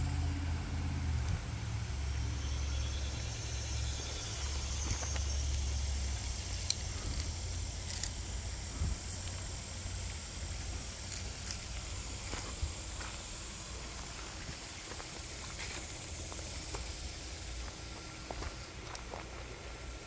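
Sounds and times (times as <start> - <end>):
footsteps on gravel and twigs: 3.5 - 19.7.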